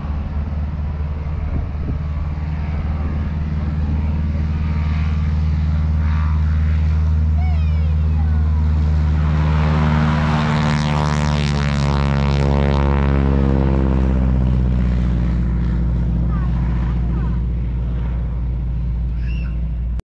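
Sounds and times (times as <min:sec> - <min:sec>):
propeller aircraft engine droning: 0:00.0 - 0:20.0.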